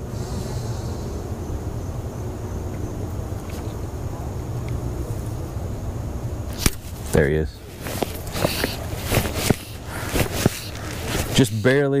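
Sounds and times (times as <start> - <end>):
steady low rumble: 0.0 - 11.7.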